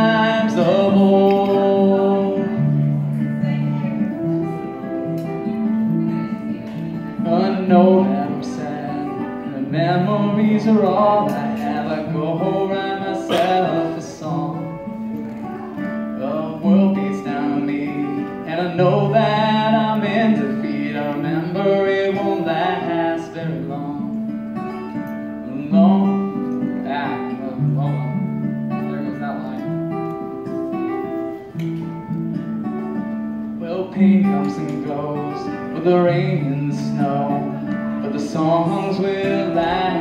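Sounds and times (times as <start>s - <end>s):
man singing: 0.0s - 29.9s, 33.5s - 40.0s
acoustic guitar strummed: 0.0s - 40.0s.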